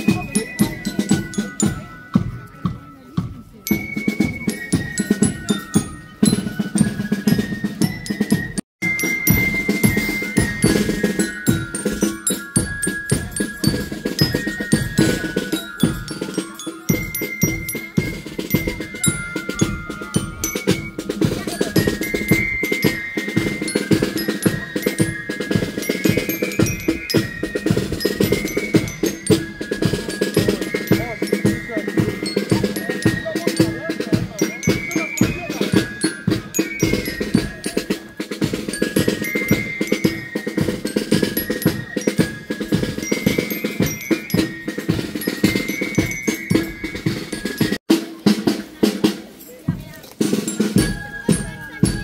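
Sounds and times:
bell lyre melody: 0:00.0 - 0:47.8
snare and bass drums: 0:00.0 - 0:52.0.

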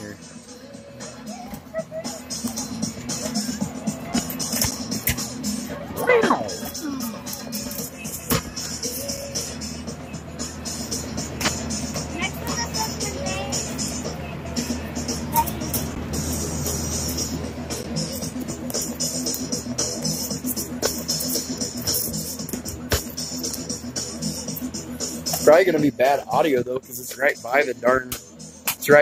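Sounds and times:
background music: 0:00.0 - 0:29.0
fan noise: 0:06.6 - 0:26.5.

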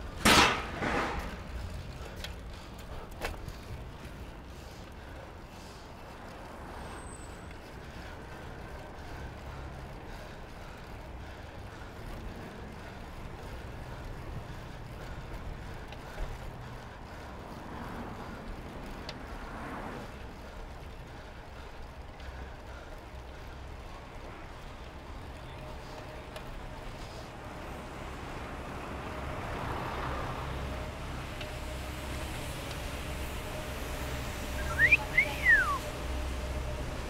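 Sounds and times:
street traffic rumble: 0:00.0 - 0:37.0.

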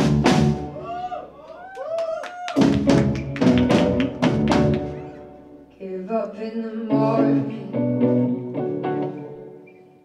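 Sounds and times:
drum hits: 0:00.0 - 0:00.8, 0:02.6 - 0:05.0
rock band playing: 0:00.0 - 0:01.0, 0:02.5 - 0:05.7.

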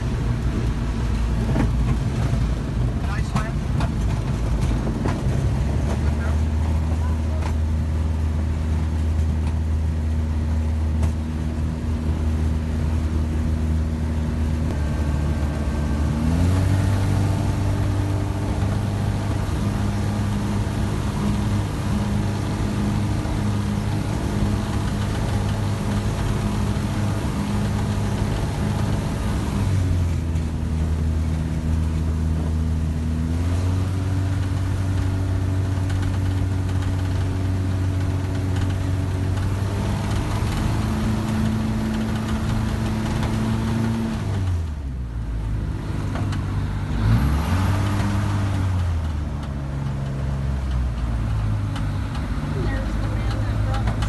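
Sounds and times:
propeller aircraft engine running: 0:00.0 - 0:54.0.

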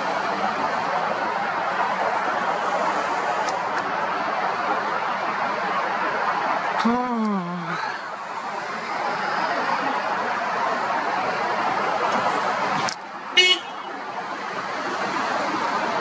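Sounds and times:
outdoor traffic noise: 0:00.0 - 0:16.0.

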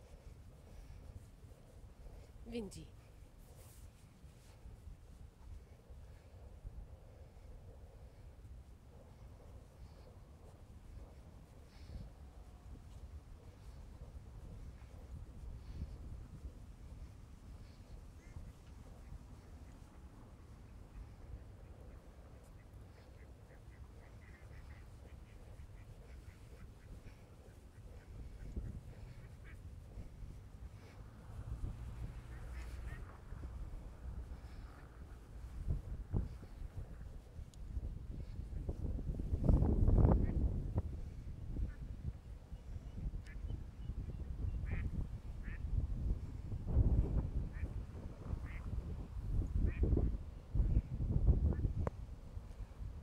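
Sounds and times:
ducks quacking: 0:22.5 - 0:30.2, 0:32.2 - 0:33.5.

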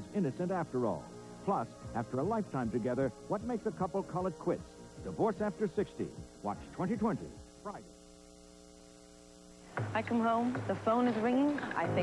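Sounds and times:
electrical mains hum: 0:00.0 - 0:12.0
woman speaking: 0:09.9 - 0:12.0.

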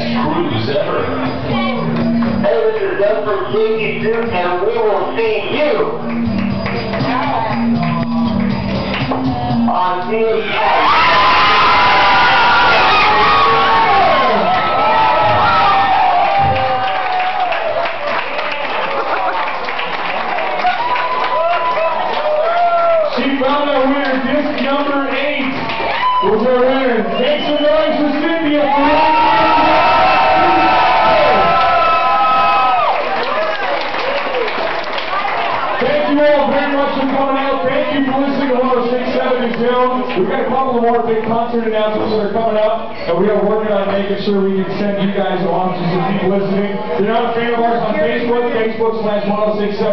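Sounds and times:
shouts and chatter: 0:10.3 - 0:19.4, 0:20.4 - 0:23.8, 0:25.6 - 0:39.5
crowd cheering: 0:10.4 - 0:38.5
high-pitched screams and whoops: 0:10.5 - 0:17.9, 0:20.6 - 0:23.1, 0:25.8 - 0:26.4, 0:28.6 - 0:34.5.

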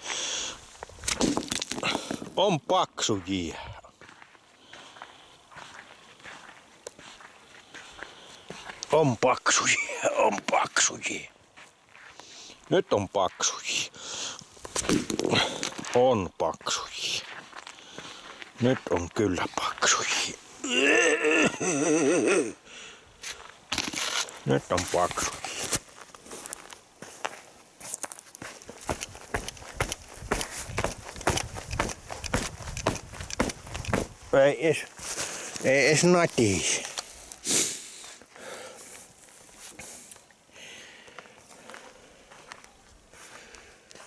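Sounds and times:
boots stepping on frozen ice: 0:00.0 - 0:12.5, 0:13.3 - 0:21.9, 0:23.2 - 0:37.5.

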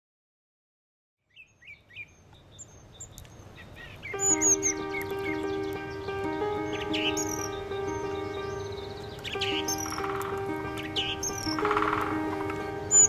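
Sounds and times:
birds chirping and calling: 0:01.3 - 0:13.0
music with long held notes: 0:04.2 - 0:13.0.

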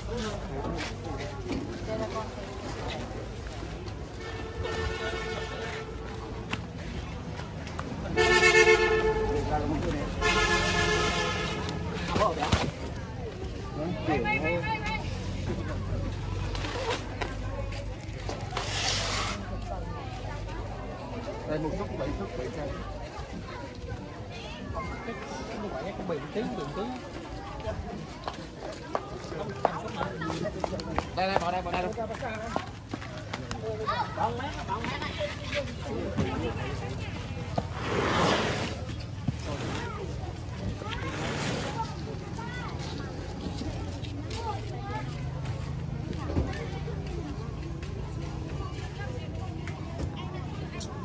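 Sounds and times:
chatter of voices: 0:00.0 - 0:51.0.

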